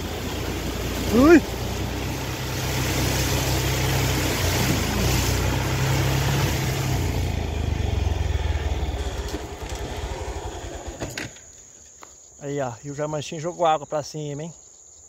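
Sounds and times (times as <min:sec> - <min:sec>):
motorcycle engine running: 0:00.0 - 0:11.4
water splashing under wheels: 0:00.0 - 0:11.4.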